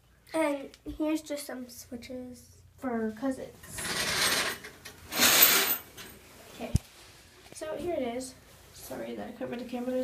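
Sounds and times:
shower curtain rings scraping rod: 3.7 - 6.2.

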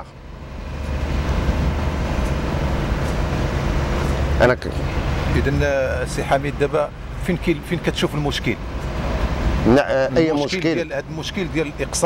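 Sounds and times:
low rumble of passing traffic: 0.0 - 12.0.

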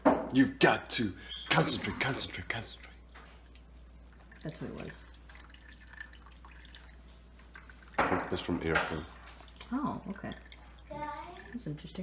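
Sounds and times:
liquid dripping into bowl: 1.5 - 12.0.

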